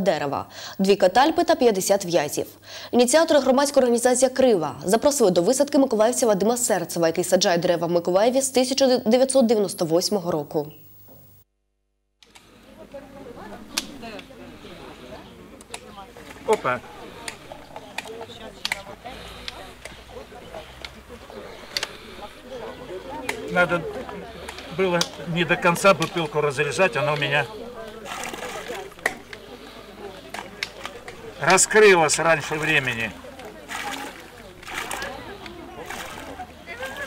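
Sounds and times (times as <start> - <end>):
faint distant voices: 12.2 - 37.0
hands working damp soil: 13.3 - 37.0.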